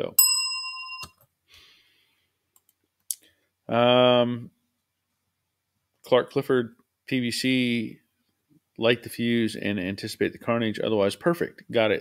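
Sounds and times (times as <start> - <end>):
bright bell-like ding: 0.0 - 1.2.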